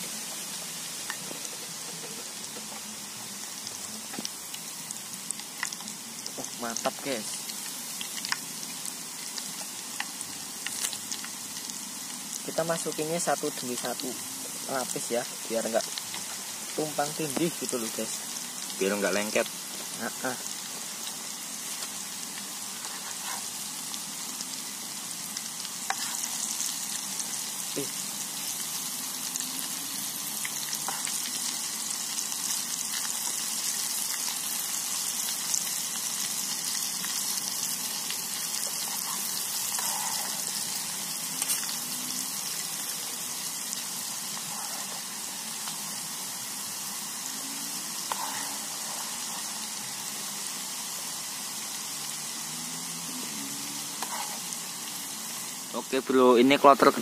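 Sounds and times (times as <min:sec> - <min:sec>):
food sizzling in hot oil: 0:00.0 - 0:57.0.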